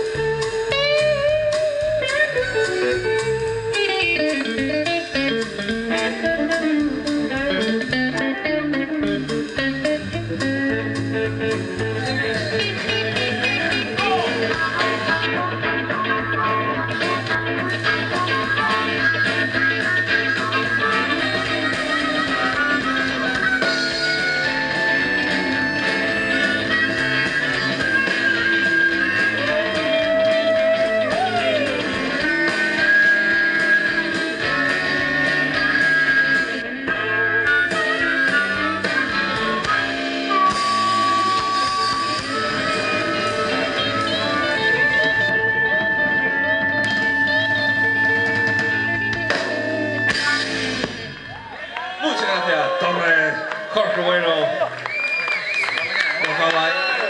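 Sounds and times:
live rock band playing: 0:00.0 - 0:57.0.

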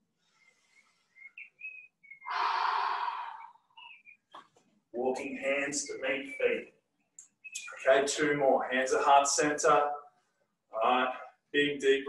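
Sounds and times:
faint short whistly sounds: 0:00.3 - 0:02.4, 0:03.3 - 0:04.3, 0:07.4 - 0:07.8
deep breath out: 0:02.3 - 0:03.7.

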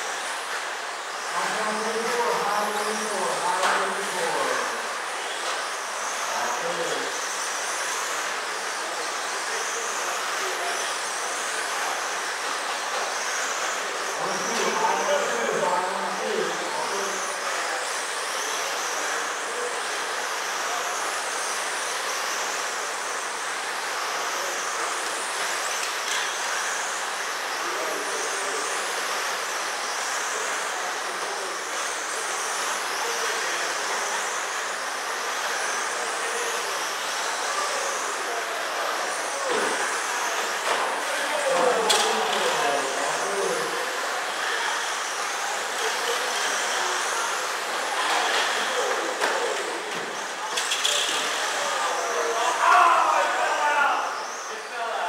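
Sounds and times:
high whine of electric motors: 0:00.0 - 0:55.0.

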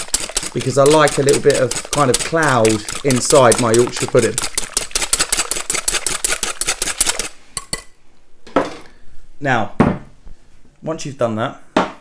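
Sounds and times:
whisk clinking in glass bowl: 0:00.0 - 0:07.9.

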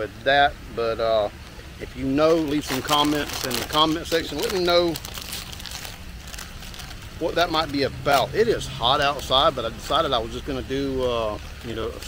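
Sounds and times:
chip bag crinkling: 0:02.1 - 0:10.1, 0:10.9 - 0:12.0.

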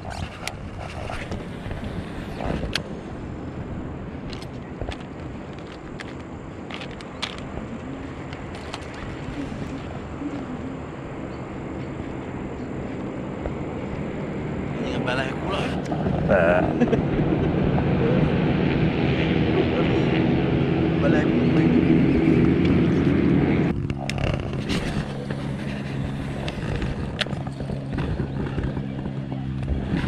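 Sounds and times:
outboard motor running: 0:00.0 - 0:30.0.

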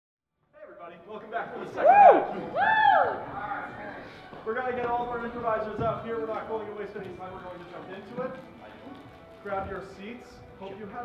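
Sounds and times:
person whooping: 0:01.8 - 0:03.2.

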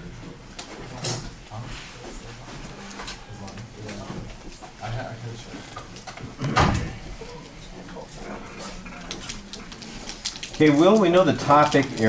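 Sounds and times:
low indistinct voices: 0:00.0 - 0:12.0
people shifting about: 0:00.0 - 0:12.0.

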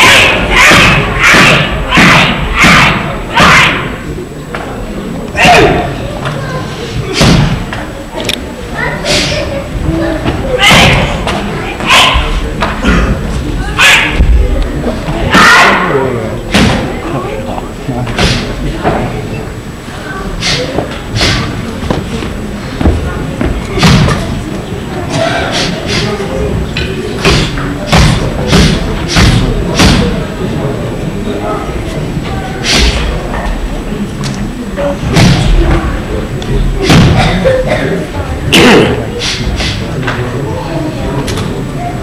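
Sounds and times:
loud thuds of strikes: 0:00.0 - 0:03.7, 0:27.2 - 0:30.1
martial arts shouts: 0:00.0 - 0:04.0, 0:05.4 - 0:06.0, 0:15.3 - 0:16.0
heavy thuds of strikes: 0:27.2 - 0:30.2.

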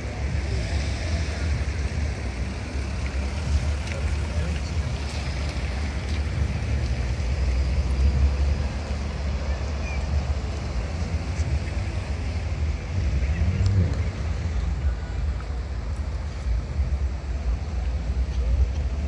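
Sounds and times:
cars passing on wet road: 0:00.0 - 0:19.0.

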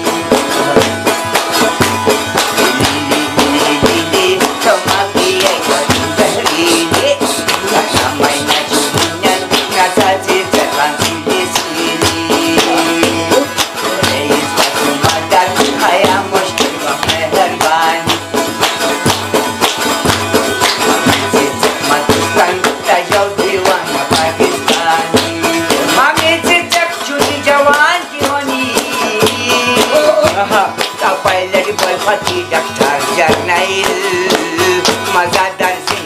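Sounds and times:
man singing: 0:00.0 - 0:01.3, 0:02.5 - 0:18.4, 0:20.8 - 0:36.0
frame drum beat: 0:00.0 - 0:36.0
plucked lute music: 0:00.0 - 0:36.0.

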